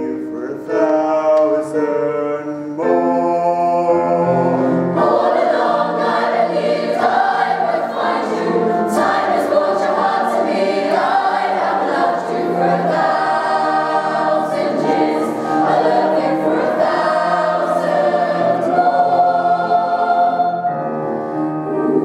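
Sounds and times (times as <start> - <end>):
youth choir singing: 4.0 - 20.8, 21.7 - 22.0.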